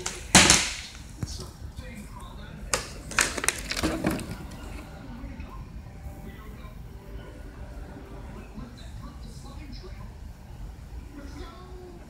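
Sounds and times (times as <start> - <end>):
plastic bottle hitting tile floor: 0.0 - 1.0, 2.7 - 4.8.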